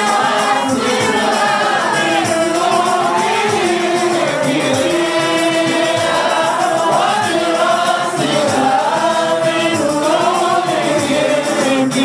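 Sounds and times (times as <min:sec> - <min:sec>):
men singing together: 0:00.0 - 0:12.0.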